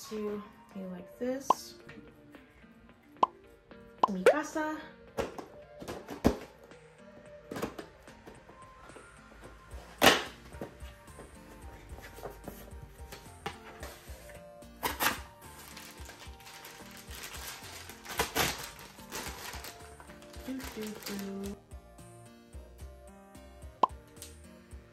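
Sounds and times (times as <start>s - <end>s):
soft background music: 0.0s - 24.9s.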